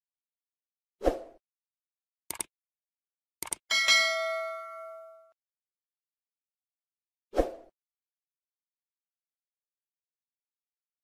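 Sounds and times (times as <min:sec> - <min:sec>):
notification bell ding: 0:03.7 - 0:05.3.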